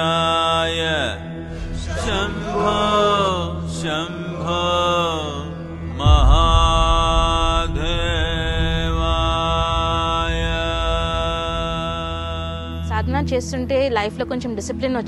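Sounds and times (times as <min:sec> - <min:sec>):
person chanting: 0:00.0 - 0:13.3
deep drone: 0:00.0 - 0:13.8
devotional music: 0:00.0 - 0:15.0.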